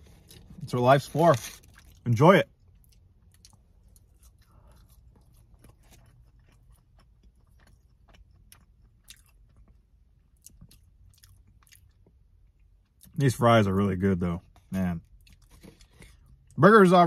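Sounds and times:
chewing fries: 0:00.0 - 0:13.4, 0:14.4 - 0:16.6.

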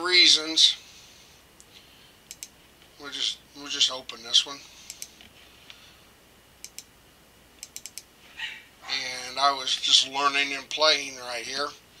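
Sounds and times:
computer mouse clicks: 0:02.3 - 0:02.6, 0:04.8 - 0:05.3, 0:06.6 - 0:06.9, 0:07.6 - 0:08.1.

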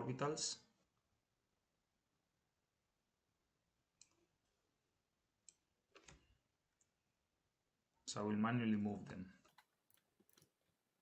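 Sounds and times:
computer mouse click: 0:05.4 - 0:06.3.

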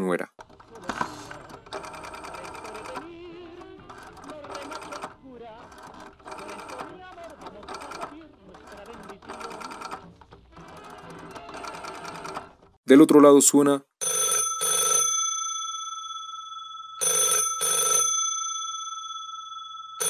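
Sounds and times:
rotary telephone dial clicking: 0:00.4 - 0:12.7.

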